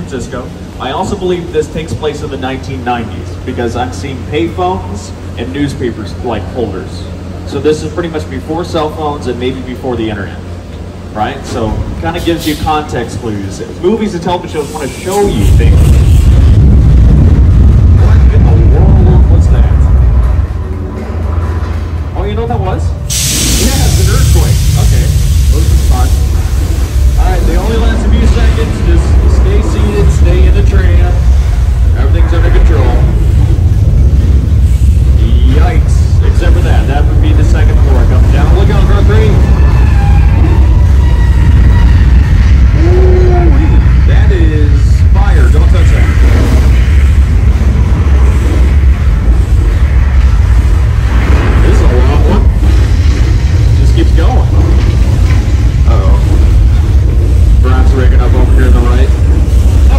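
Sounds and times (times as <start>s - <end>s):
loud deep rumbling: 0.0s - 59.9s
held voice-like sound: 42.7s - 45.3s.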